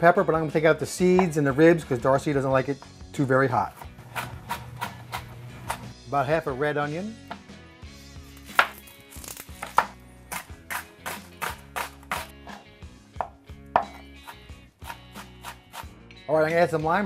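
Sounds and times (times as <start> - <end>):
knife chopping on cutting board: 3.7 - 5.9, 8.5 - 8.8, 9.6 - 12.6, 13.2 - 15.9.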